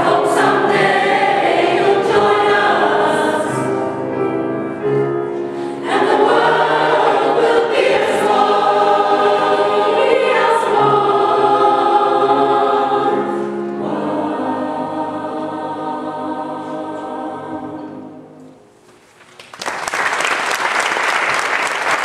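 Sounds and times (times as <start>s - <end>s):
mixed choir singing: 0.0s - 4.2s, 4.8s - 18.4s.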